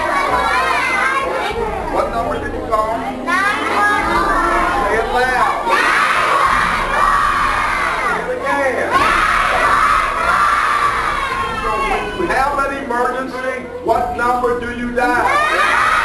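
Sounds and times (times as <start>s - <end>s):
children shouting together: 0.0s - 2.0s, 3.2s - 12.4s, 15.2s - 16.0s.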